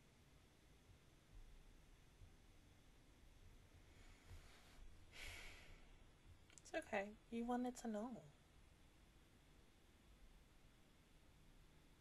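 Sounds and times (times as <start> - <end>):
woman sighing: 5.2 - 5.8
woman speaking: 6.6 - 8.4.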